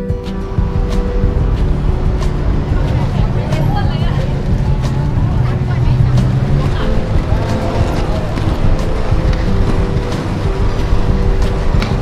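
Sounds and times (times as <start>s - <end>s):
indistinct voices: 0.0s - 12.0s
road traffic rumble: 0.0s - 12.0s.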